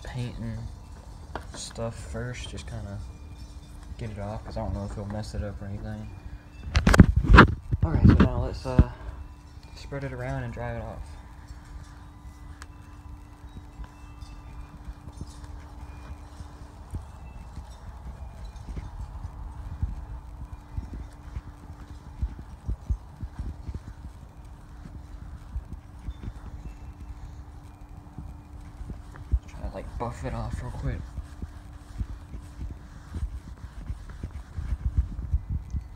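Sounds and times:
steady low hum: 0:00.0 - 0:35.9.

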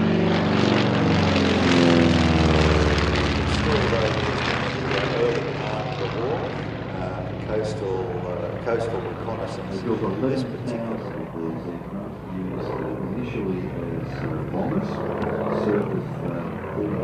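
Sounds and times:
propeller aircraft engines passing: 0:00.0 - 0:17.0.

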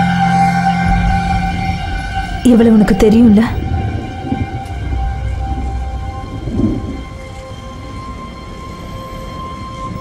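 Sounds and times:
heavy rain: 0:00.0 - 0:10.0
low rumble of thunder: 0:00.8 - 0:10.0.

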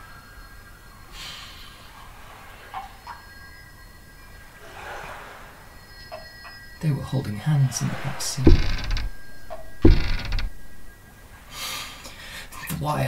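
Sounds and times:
soft breath: 0:01.1 - 0:02.2, 0:11.5 - 0:12.6.

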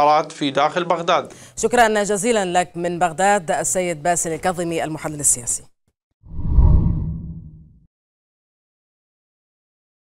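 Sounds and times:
deep whoosh: 0:06.3 - 0:07.8.

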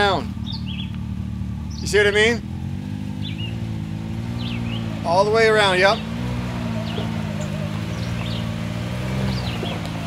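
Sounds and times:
utility vehicle engine running: 0:00.0 - 0:10.0.

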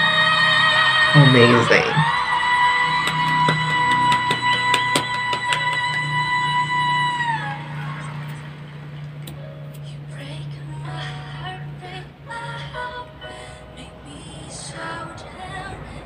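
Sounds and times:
piano accompaniment: 0:00.0 - 0:16.0
audience clapping and cheering: 0:01.2 - 0:08.4.

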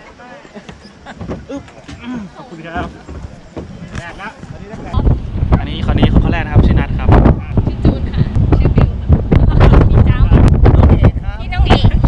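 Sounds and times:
people talking: 0:00.0 - 0:12.0
wind buffeting microphone: 0:00.9 - 0:12.0.

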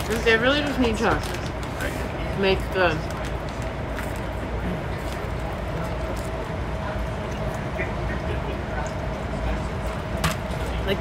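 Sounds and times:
train running rumble inside car: 0:00.0 - 0:11.0.

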